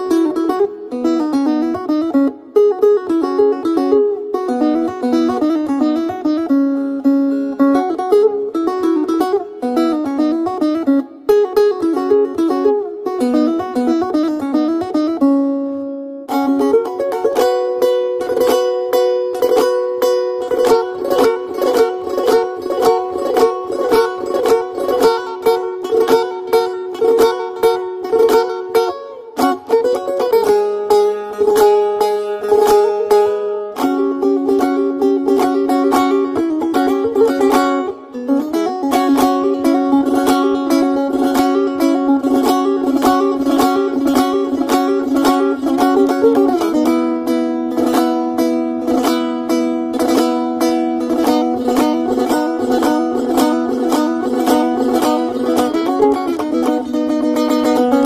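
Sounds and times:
strummed string instrument: 0.0s - 58.0s.

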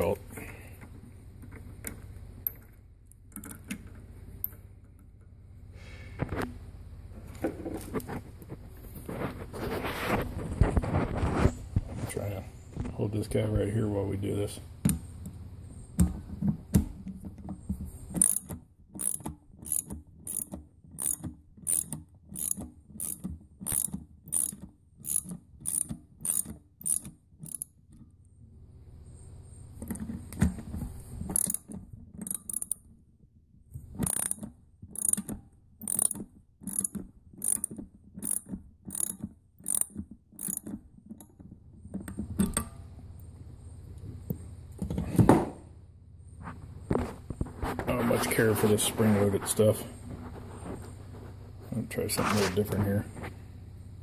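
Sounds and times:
ratchet wrench clicking: 18.2s - 27.8s, 31.3s - 32.8s, 34.0s - 40.8s.

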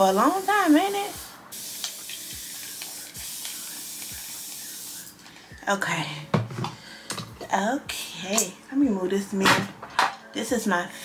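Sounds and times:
spray bottle hissing: 0.2s - 5.2s.

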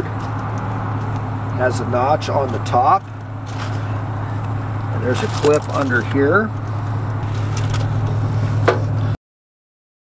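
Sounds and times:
truck engine idling: 0.0s - 9.2s.

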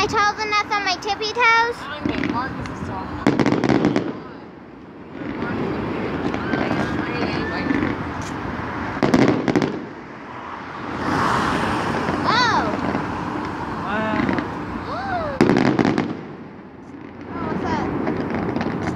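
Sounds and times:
fireworks bursting and crackling: 0.0s - 10.2s, 10.8s - 18.9s.

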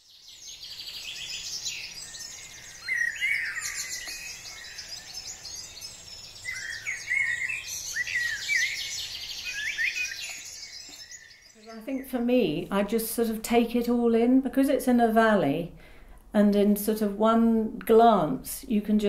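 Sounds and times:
birds chirping and trilling: 0.0s - 14.2s.

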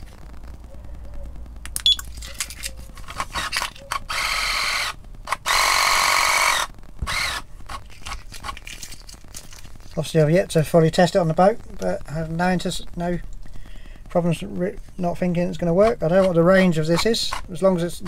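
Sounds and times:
sharp clicks: 1.6s - 9.4s.

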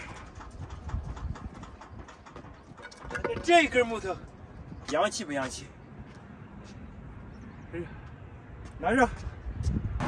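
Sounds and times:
wind rumbling on microphone: 0.0s - 5.1s, 8.8s - 10.0s.

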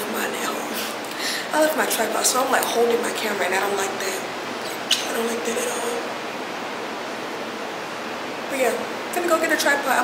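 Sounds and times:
woman's voice: 0.0s - 6.1s, 8.5s - 10.0s
steady background hiss: 0.0s - 10.0s.

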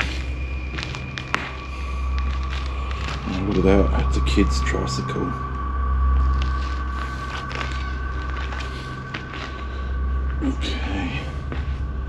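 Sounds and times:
footsteps crunching on debris: 0.0s - 12.0s
steady low rumble: 0.0s - 12.0s.

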